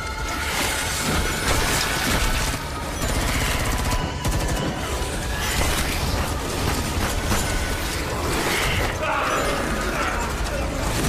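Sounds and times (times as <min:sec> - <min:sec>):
dramatic score music: 0:00.0 - 0:11.0
rapid automatic gunfire: 0:01.0 - 0:11.0.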